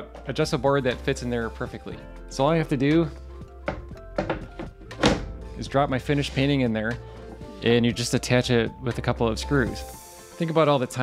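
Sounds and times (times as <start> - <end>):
quiet background music: 0.0 - 11.0
light knocks of wooden panel: 3.6 - 5.3
wooden thunk: 3.6 - 5.3.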